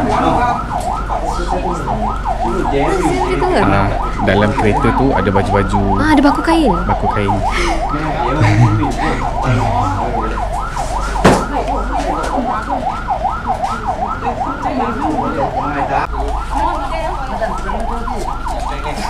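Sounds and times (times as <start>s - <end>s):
ambulance siren yelping: 0.0s - 19.0s.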